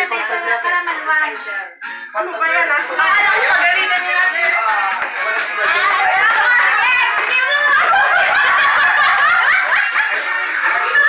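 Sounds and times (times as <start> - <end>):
people chattering: 0.0 - 11.0
people laughing: 5.2 - 11.0.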